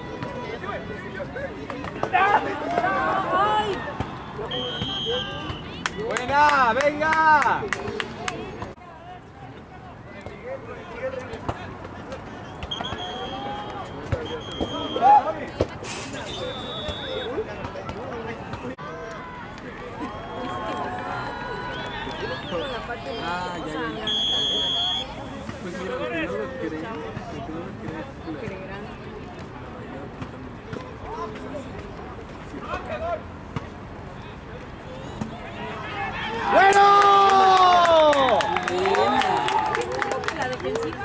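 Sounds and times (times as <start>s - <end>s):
people talking and calling out: 0.0s - 41.0s
referee whistle blasts: 4.1s - 5.8s, 12.4s - 15.2s, 16.2s - 17.4s, 21.7s - 25.2s.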